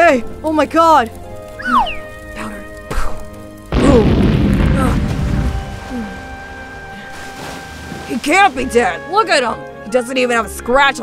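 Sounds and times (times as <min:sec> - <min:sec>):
background music: 0:00.0 - 0:11.0
deep explosion boom: 0:03.7 - 0:06.8.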